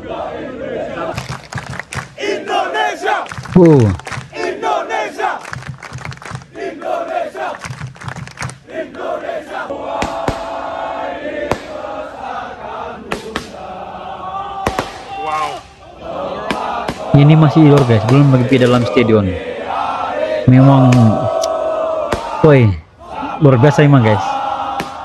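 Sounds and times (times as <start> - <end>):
crowd chanting: 0.0 - 25.0
crowd roar: 0.0 - 25.0.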